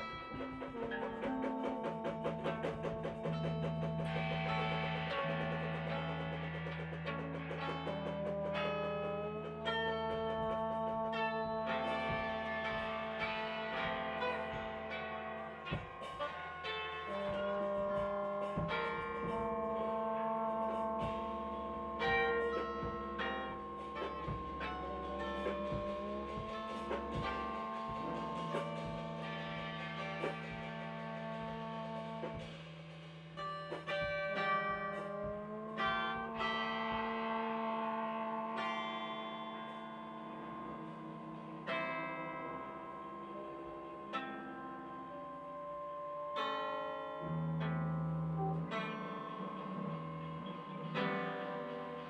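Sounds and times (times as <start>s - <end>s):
band playing bell-like notes: 0.0s - 52.0s.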